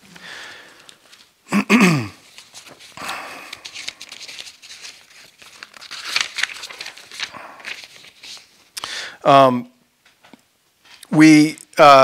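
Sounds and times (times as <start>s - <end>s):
paper sheets rustling: 0.0s - 1.4s, 2.2s - 8.8s.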